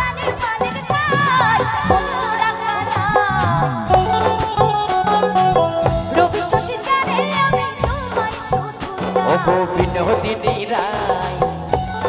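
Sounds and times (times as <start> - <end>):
drum and cymbal strikes: 0.0 - 12.0
plucked string melody: 0.0 - 12.0.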